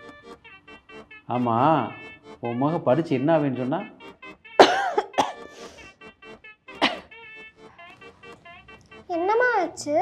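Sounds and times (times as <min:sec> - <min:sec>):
person coughing: 0:04.6 - 0:05.7, 0:06.8 - 0:07.1.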